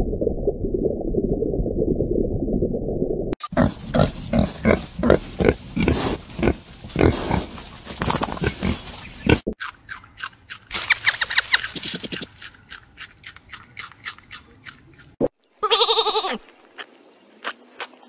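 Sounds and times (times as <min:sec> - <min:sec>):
piglets grunting: 0:03.4 - 0:09.4.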